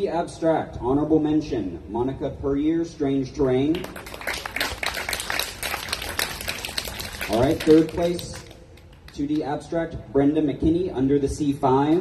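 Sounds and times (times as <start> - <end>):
small audience clapping: 3.8 - 9.4.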